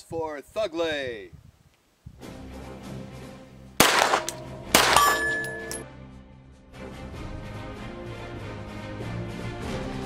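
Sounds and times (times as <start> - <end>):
background music: 2.2 - 10.0
pistol shots ringing out: 3.8 - 5.8.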